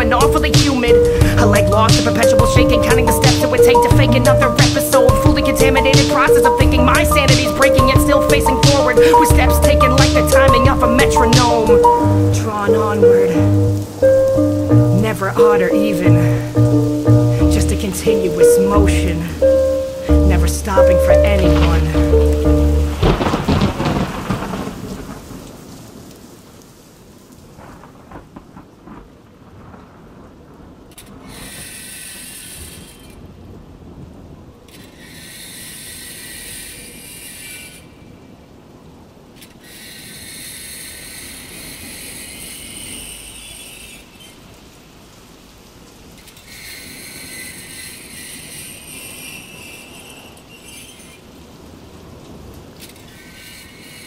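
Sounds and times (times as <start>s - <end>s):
song music: 0.0s - 23.4s
rain-like noise: 0.0s - 54.0s.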